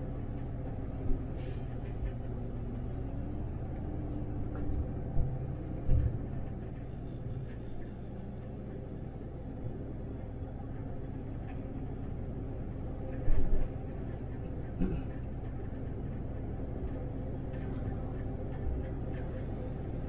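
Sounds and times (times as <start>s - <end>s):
bus interior drive rumble: 0.0s - 20.0s.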